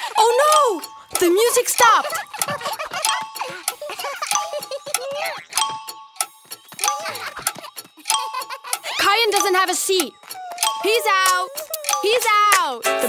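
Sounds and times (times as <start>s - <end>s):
cartoon character laughing: 1.8s - 5.6s, 6.9s - 9.2s
cartoon characters giggling: 1.8s - 5.6s, 6.8s - 9.2s.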